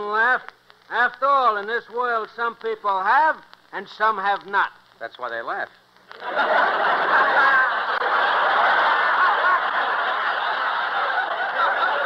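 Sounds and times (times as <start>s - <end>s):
studio audience laughing: 6.1s - 12.0s.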